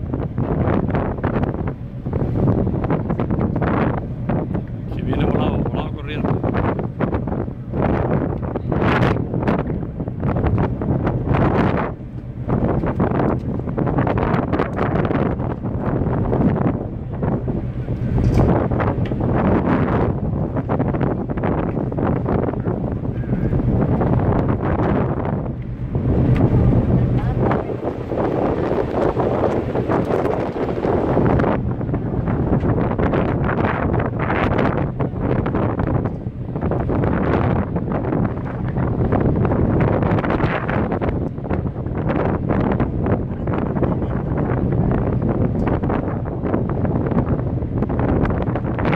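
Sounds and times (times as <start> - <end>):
steady low drone: 0.0 - 48.9
wind buffeting microphone: 0.0 - 48.9.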